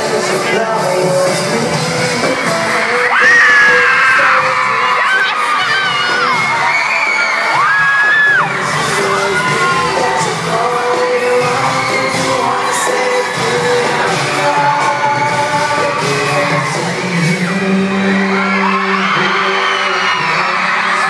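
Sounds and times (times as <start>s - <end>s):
fans screaming loudly: 0.0s - 21.0s
live pop band and singers: 0.0s - 21.0s.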